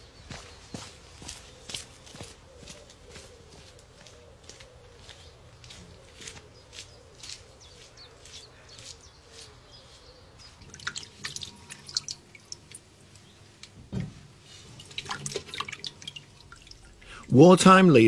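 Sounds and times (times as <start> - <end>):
hands moving tomatoes in water: 10.5 - 17.4
small splashes and drips: 10.6 - 13.8, 14.5 - 17.4.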